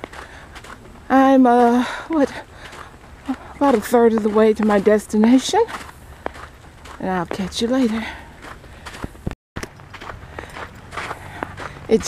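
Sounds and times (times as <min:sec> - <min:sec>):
footsteps crunching on snow: 0:00.0 - 0:12.0.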